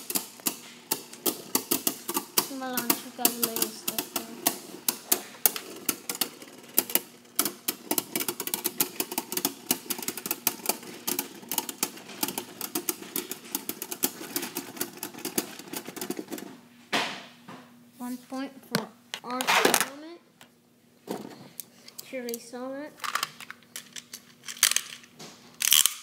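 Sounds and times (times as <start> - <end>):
spinning tops clicking and clacking: 0.0 - 16.5
spinning tops whirring: 0.0 - 16.6.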